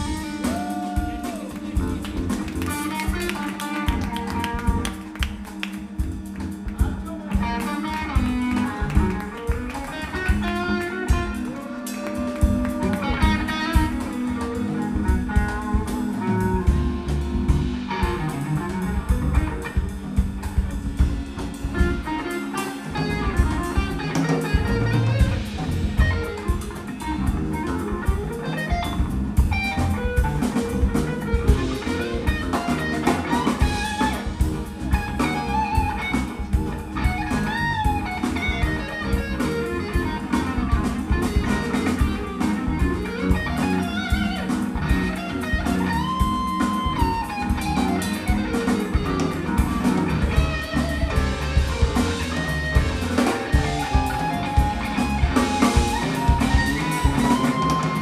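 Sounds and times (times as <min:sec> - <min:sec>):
drum kit steady beat: 0:00.0 - 0:58.0
electric bass: 0:00.0 - 0:58.0
electric guitar lead line: 0:00.0 - 0:58.0
keyboards: 0:00.0 - 0:58.0.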